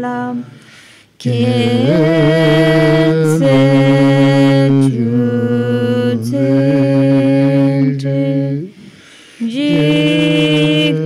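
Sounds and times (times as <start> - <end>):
man chanting in long tones: 1.2 - 8.8.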